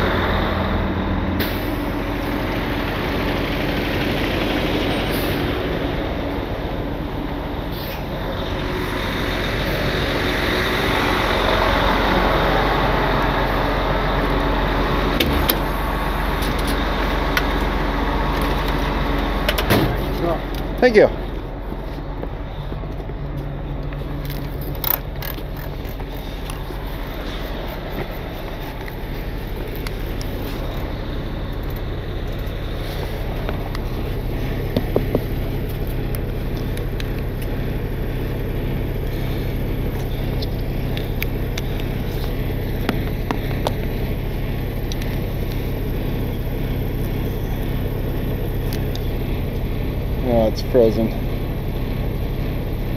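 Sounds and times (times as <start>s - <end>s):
diesel truck engine idling: 0.0s - 52.9s.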